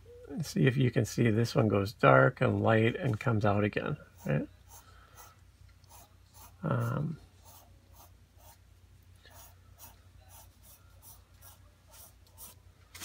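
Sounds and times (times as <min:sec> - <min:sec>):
pencil scratching on paper: 0:04.2 - 0:08.6, 0:09.3 - 0:12.6.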